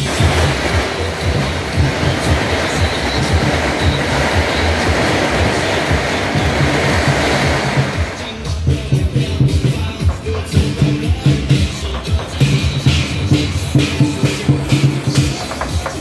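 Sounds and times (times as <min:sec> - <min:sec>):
firecrackers crackling: 0:00.0 - 0:16.0
music: 0:00.0 - 0:16.0.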